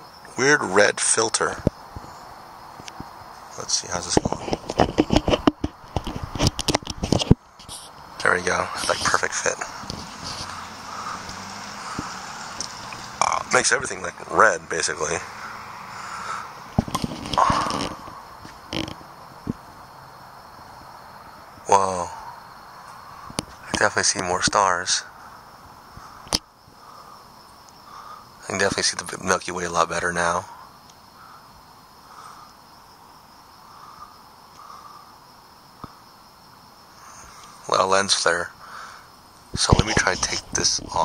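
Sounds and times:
night insects chirring: 0.0s - 41.0s
small clicks and scrapes: 4.1s - 8.0s, 9.8s - 10.6s, 16.8s - 19.0s.

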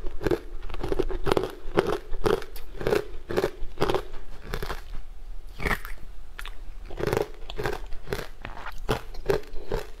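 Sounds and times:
chewing ice crunches: 0.0s - 4.9s, 5.6s - 10.0s.

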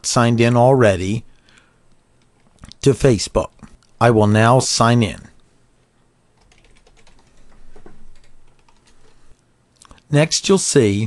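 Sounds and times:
computer keyboard typing: 6.4s - 9.2s.

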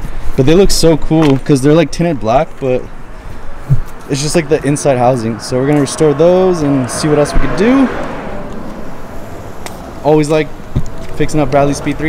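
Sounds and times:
low rumble with hiss: 0.4s - 12.0s.

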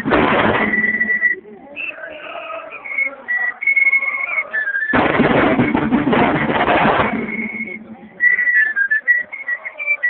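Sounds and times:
high whistled tune: 0.4s - 5.9s, 7.0s - 10.0s.

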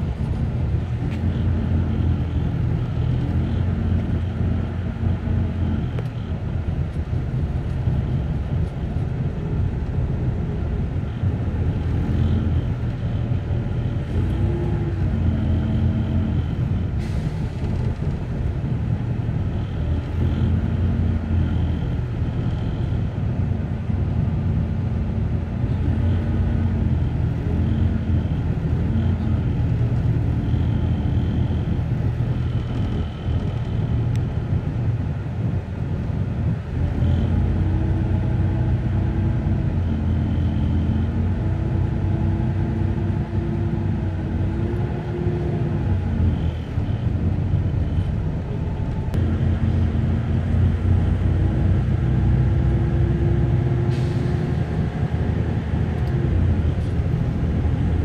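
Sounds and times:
engine and road rumble: 0.0s - 58.0s.

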